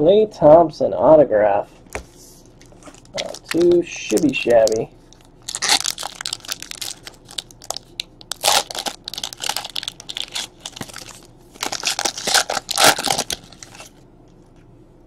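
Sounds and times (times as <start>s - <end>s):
plastic packaging crinkling: 2.6s - 14.0s.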